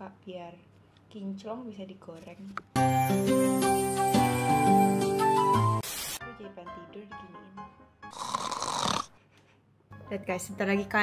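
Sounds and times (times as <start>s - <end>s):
person snoring: 8.1s - 9.2s.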